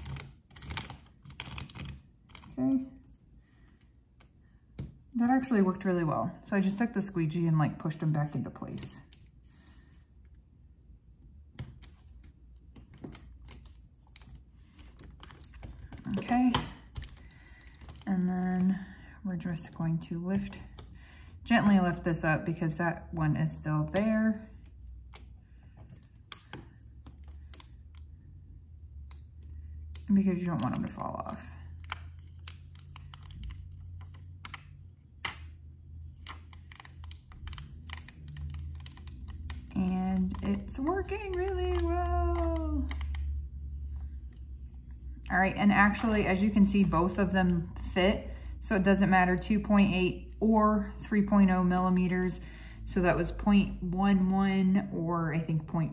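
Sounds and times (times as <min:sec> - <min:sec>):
low steady hum: 0:00.0 - 0:55.9
plastic sheet peeling crackles: 0:36.1 - 0:44.5.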